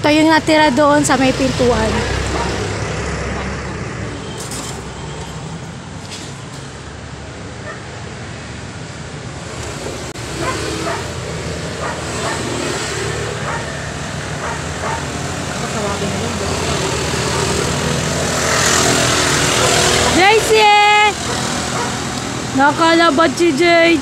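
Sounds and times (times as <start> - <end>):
road traffic noise: 0.0 - 24.0
vehicle passing close by: 0.4 - 24.0.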